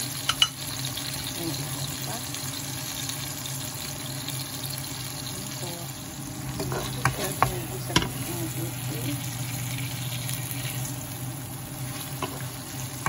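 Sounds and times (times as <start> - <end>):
food sizzling in oil: 0.0 - 13.0
steady low hum: 5.2 - 13.0.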